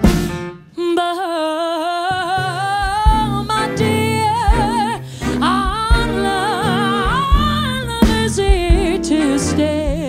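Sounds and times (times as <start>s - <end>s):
instrumental accompaniment: 0.0s - 0.8s, 2.4s - 10.0s.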